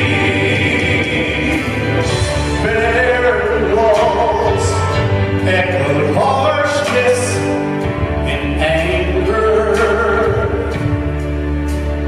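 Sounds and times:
men singing in harmony: 0:00.0 - 0:10.9
acoustic guitar: 0:00.0 - 0:12.0
piano: 0:00.0 - 0:12.0.

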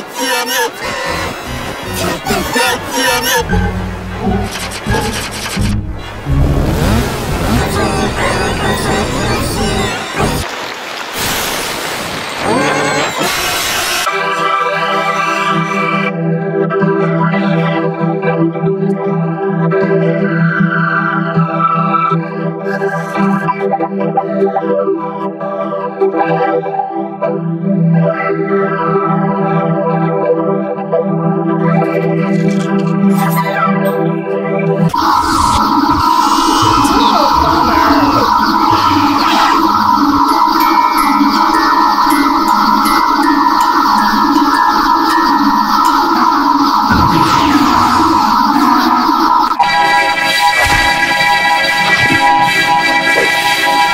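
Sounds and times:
organ-like drone with phaser swirl: 0:00.0 - 0:10.4, 0:32.4 - 0:53.9
dense distorted sound with pitch glides: 0:00.8 - 0:13.1, 0:34.0 - 0:53.9.

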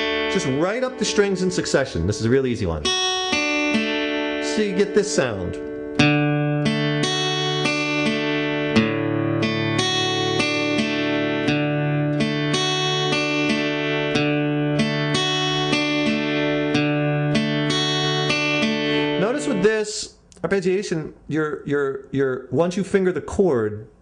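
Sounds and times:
acoustic guitar arpeggio: 0:00.0 - 0:19.8.

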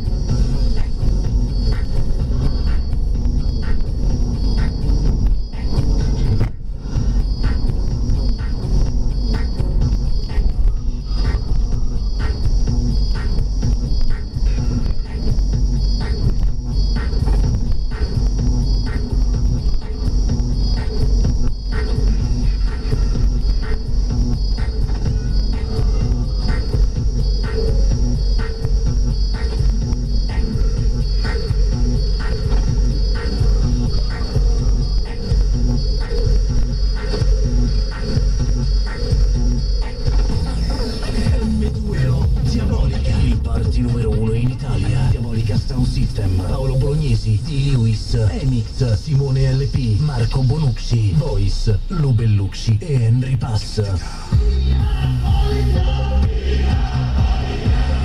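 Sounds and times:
car rumble: 0:00.0 - 0:58.0
electronic dance music on car radio: 0:00.0 - 0:58.0.

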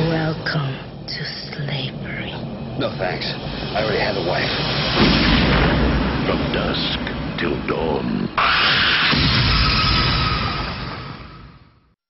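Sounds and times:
trailer music: 0:00.0 - 0:11.9.

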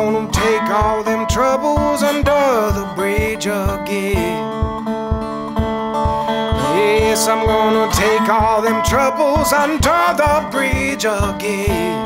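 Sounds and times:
person singing: 0:00.0 - 0:05.3, 0:06.1 - 0:12.0
slide resonator guitar blues: 0:00.0 - 0:12.0
steady low thump: 0:00.3 - 0:11.4.

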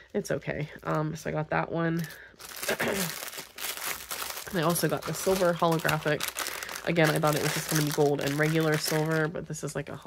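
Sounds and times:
plastic bag crinkling: 0:00.0 - 0:09.8.

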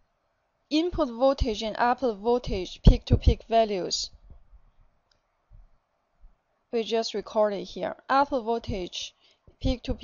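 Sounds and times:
soft low thumps: 0:02.8 - 0:03.5.

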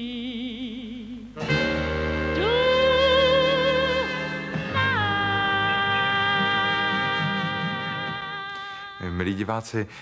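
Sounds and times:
woman singing jazz ballad: 0:00.0 - 0:09.0
band accompaniment: 0:01.4 - 0:05.3.

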